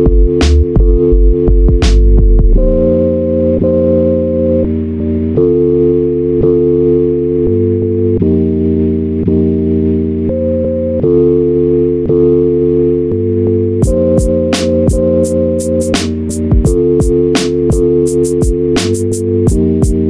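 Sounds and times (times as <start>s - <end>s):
low bass line: 0.0s - 5.6s, 13.1s - 20.0s
sampled chords: 0.0s - 20.0s.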